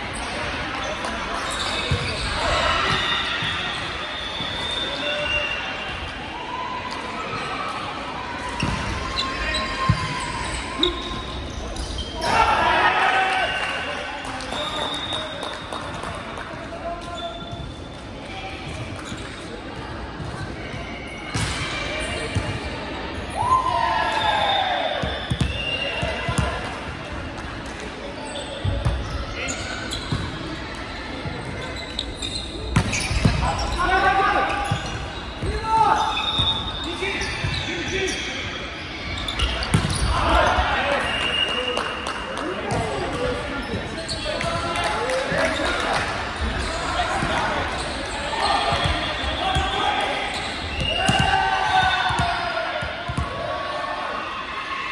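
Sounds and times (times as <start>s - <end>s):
players shouting: 46.6s - 54.9s.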